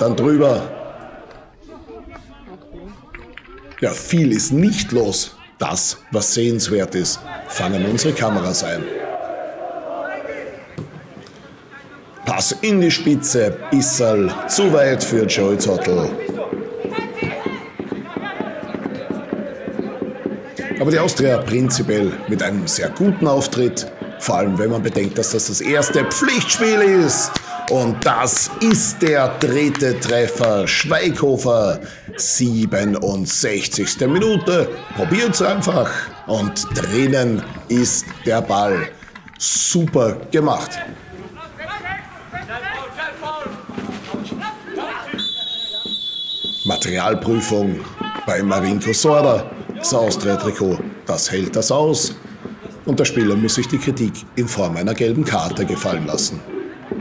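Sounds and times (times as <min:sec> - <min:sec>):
players shouting on pitch: 0:00.0 - 0:57.0
voices calling out: 0:00.0 - 0:57.0
referee's whistle blast: 0:45.2 - 0:47.0.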